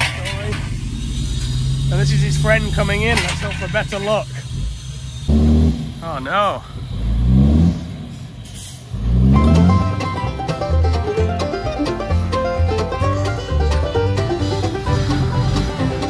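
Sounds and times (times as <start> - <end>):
truck engine revving: 0.0 - 16.0
banjo music: 9.1 - 16.0.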